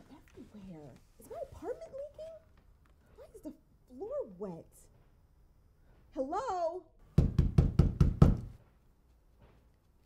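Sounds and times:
rapid knocking on a door: 0:07.1 - 0:08.6.

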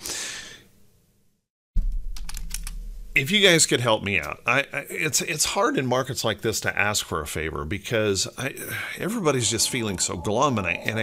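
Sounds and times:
low hum: 0:01.8 - 0:03.3, 0:08.8 - 0:11.0.

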